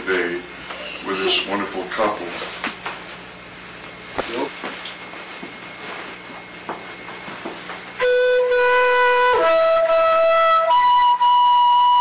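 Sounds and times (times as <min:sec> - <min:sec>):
flute playing slow melody: 0:08.0 - 0:12.0.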